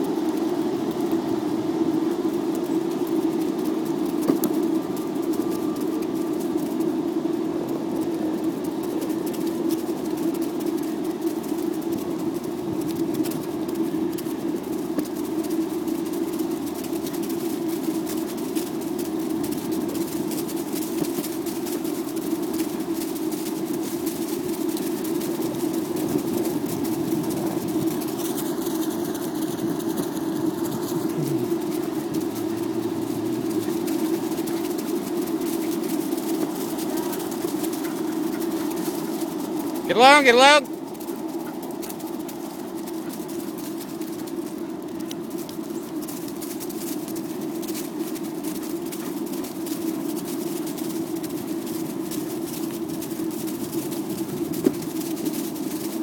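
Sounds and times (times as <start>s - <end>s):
skateboard wheels rolling on pavement: 0.0s - 56.0s
small ticks: 0.0s - 56.0s.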